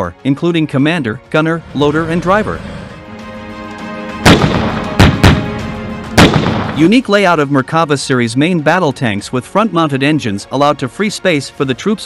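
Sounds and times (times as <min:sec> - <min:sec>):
background music with sustained notes: 0:00.0 - 0:12.0
tank gun firing: 0:04.2 - 0:06.9.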